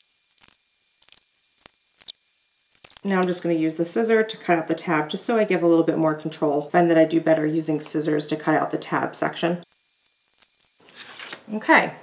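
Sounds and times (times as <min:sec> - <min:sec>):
cardstock being cut: 0:10.4 - 0:11.5.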